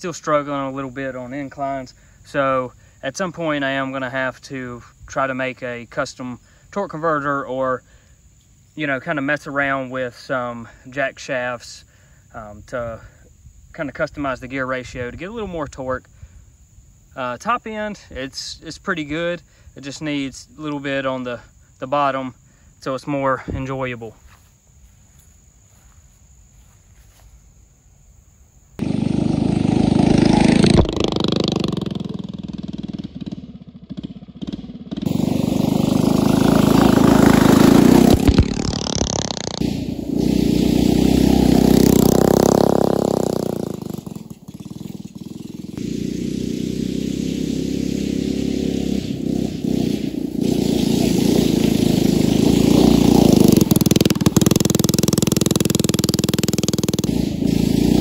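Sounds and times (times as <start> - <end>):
small engine revving: 28.8 - 58.0.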